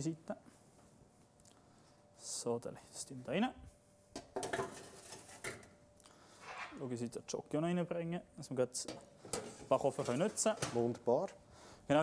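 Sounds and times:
metal baking trays clattering: 0:04.4 - 0:05.6, 0:08.8 - 0:11.2.

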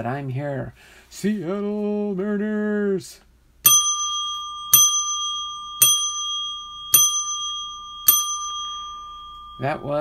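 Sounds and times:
small bell ringing: 0:03.6 - 0:10.0.

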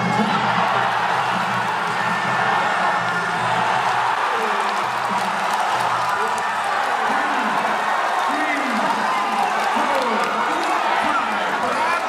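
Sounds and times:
crowd cheering and shouting: 0:00.0 - 0:12.0.

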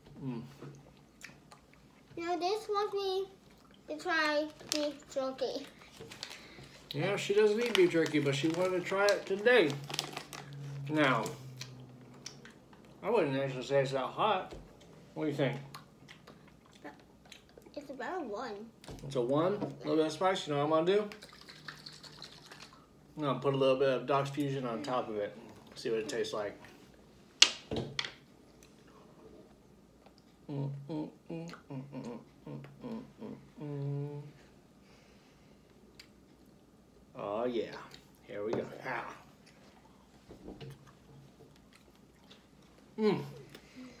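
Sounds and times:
person chewing: 0:39.2 - 0:44.0.

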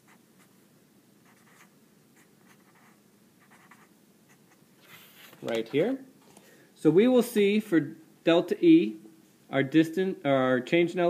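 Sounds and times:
pen scratching on paper: 0:01.2 - 0:05.4.

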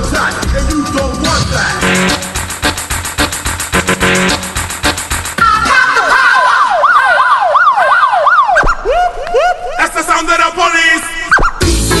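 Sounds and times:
dance music: 0:00.0 - 0:09.8, 0:11.0 - 0:12.0
siren wailing: 0:05.4 - 0:09.9.

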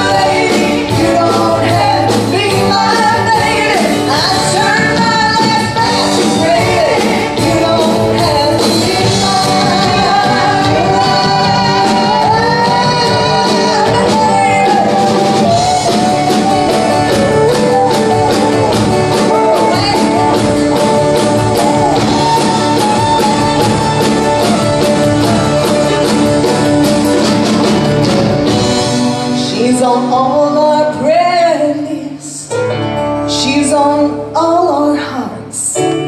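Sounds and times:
steady drum beat: 0:00.0 - 0:29.3
strummed guitars: 0:00.0 - 0:31.9.

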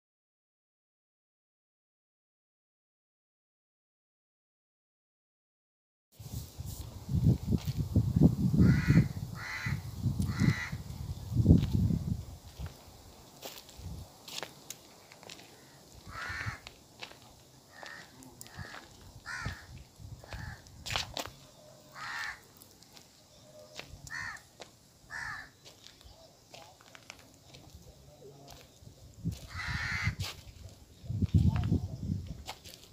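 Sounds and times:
crow cawing: 0:08.6 - 0:10.8, 0:15.2 - 0:20.7, 0:21.8 - 0:22.6, 0:24.0 - 0:25.7, 0:29.3 - 0:30.4.

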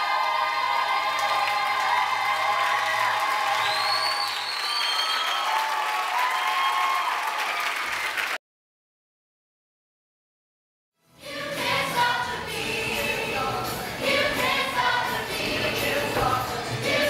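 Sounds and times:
audience applause: 0:00.0 - 0:08.4
cast singing with music: 0:11.0 - 0:17.0.

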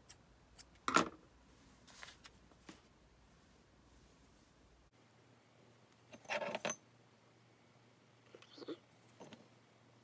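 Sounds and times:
soft handling noises: 0:01.4 - 0:04.7.

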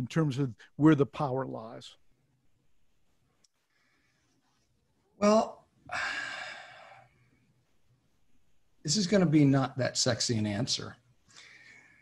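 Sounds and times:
man sighing: 0:05.2 - 0:07.1.

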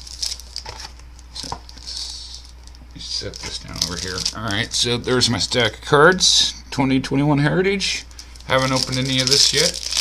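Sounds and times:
packaging crinkling and rustling: 0:00.0 - 0:05.3, 0:08.2 - 0:10.0.

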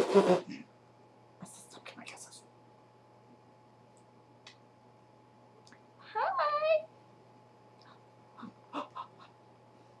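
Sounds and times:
faint whispering: 0:01.4 - 0:02.5.

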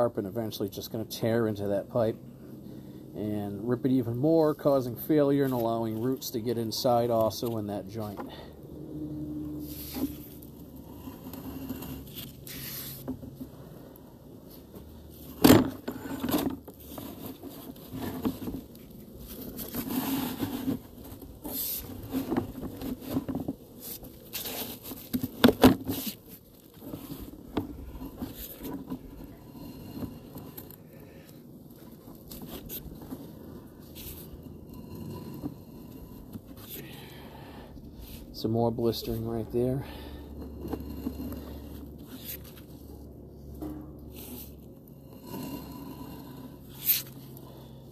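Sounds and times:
cable scraping and rubbing: 0:03.6 - 0:36.8, 0:38.0 - 0:47.9.

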